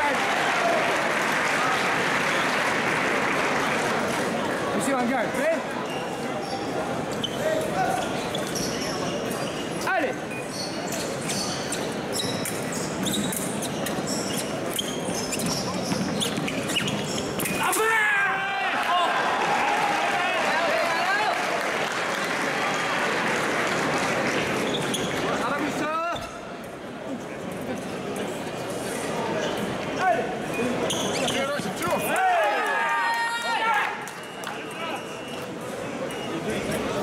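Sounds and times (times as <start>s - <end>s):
shoes squeaking and stamping: 5.9s - 17.8s
people shouting: 17.6s - 20.6s.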